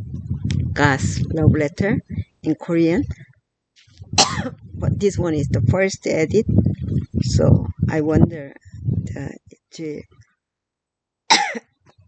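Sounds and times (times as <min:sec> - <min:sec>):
woman coughing: 0:04.2 - 0:04.6, 0:11.3 - 0:11.6.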